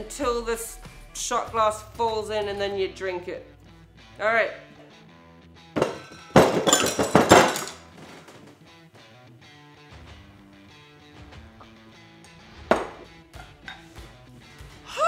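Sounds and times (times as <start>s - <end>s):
background music: 0.0s - 15.0s
fists pounding wooden bar top: 5.8s - 7.7s, 12.7s - 13.1s.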